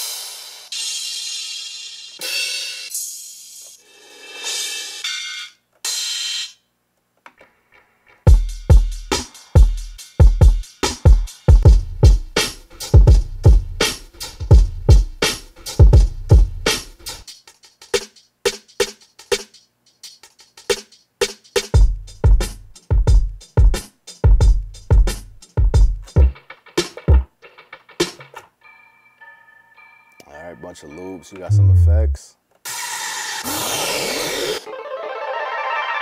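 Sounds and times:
hip-hop drum loops: 8.3 - 28.4, 31.3 - 32.2
short held high tones: 31.0 - 32.3.

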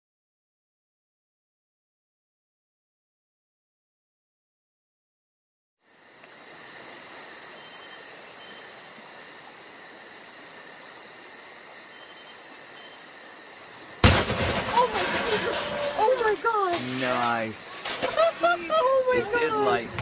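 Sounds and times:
faint steady hiss: 5.8 - 20.0
loud explosion with rumbling decay: 14.0 - 16.0
people shouting: 14.7 - 20.0.

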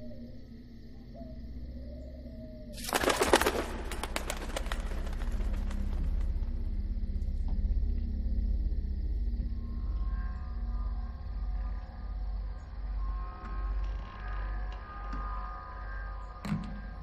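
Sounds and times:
low music drone: 0.0 - 17.0
flock of birds wingbeats: 2.8 - 6.6.

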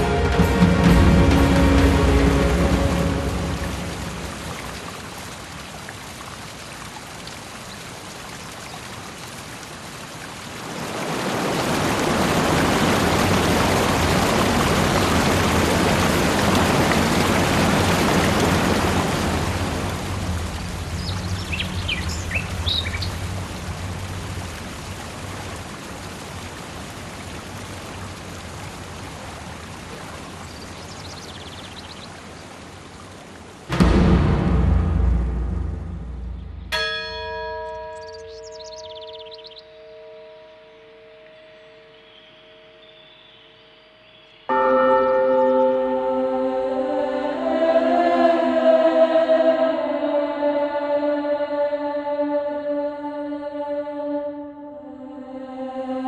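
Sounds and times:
waterfall rushing over rocks: 0.0 - 34.1
bird chirps: 21.0 - 23.2, 37.7 - 44.6.

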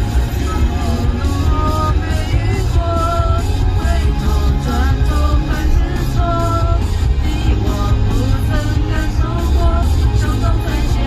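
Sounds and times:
pop-rock karaoke backing track: 0.0 - 11.0.

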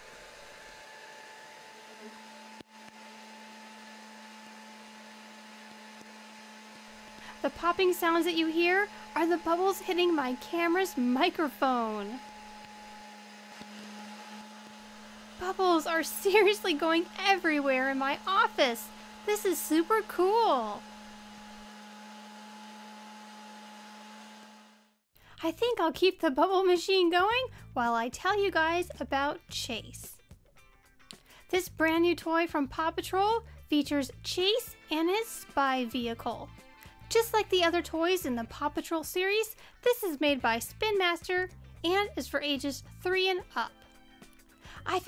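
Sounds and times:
bubble blower fan motor whirring: 0.0 - 25.0.

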